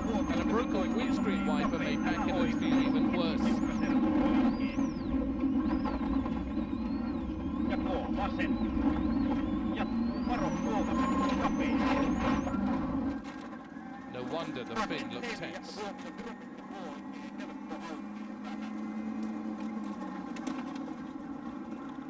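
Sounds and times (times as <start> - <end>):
high whine: 0.0 - 22.0
rally car engine at speed: 0.0 - 22.0.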